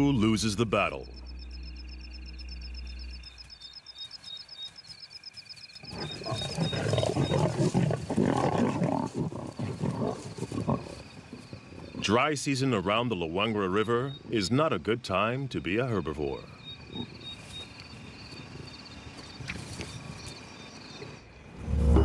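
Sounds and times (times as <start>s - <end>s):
low hum: 0.0s - 4.5s, 21.5s - 22.0s
lions growling: 5.8s - 12.1s.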